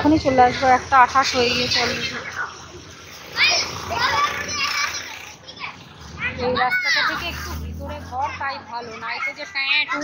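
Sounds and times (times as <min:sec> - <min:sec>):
children shouting and chattering: 0:00.0 - 0:10.0.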